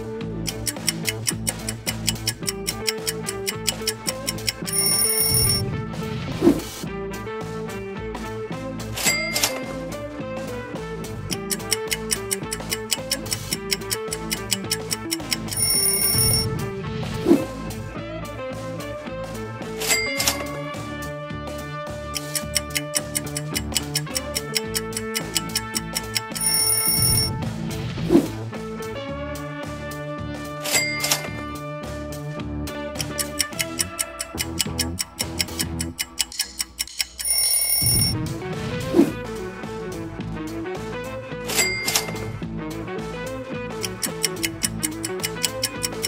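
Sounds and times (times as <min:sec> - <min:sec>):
quiz background music: 0:00.0 - 0:46.0
rapid clock-like ticking: 0:00.3 - 0:05.6, 0:09.0 - 0:09.9, 0:11.2 - 0:16.6, 0:19.7 - 0:20.8, 0:22.1 - 0:27.4, 0:32.9 - 0:38.3, 0:43.7 - 0:46.0
ringing tone: 0:01.7 - 0:05.7, 0:09.0 - 0:09.8, 0:11.3 - 0:16.6, 0:19.8 - 0:20.8, 0:22.2 - 0:27.4, 0:30.7 - 0:31.5, 0:36.2 - 0:38.2, 0:41.6 - 0:42.3.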